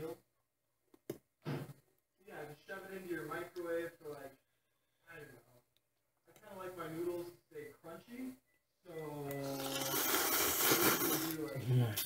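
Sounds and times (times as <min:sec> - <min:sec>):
slurping noodles: 0:09.4 - 0:11.4.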